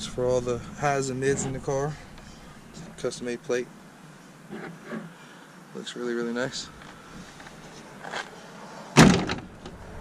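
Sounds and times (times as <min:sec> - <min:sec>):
car hatch slamming shut: 0:09.0 - 0:09.8.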